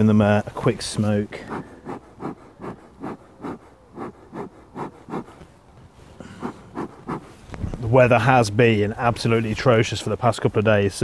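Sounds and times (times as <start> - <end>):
bee smoker bellows puffing: 0.6 - 7.8.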